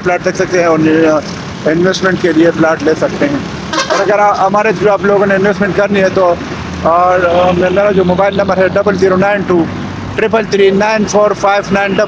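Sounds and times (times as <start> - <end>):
man talking: 0.0 - 12.0
traffic and engines hum: 0.0 - 12.0.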